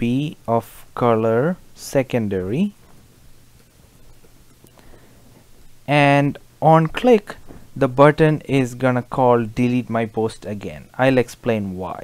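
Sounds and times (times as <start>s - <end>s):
man talking: 0.0s - 2.8s, 5.9s - 12.0s
low steady hum: 0.0s - 12.0s.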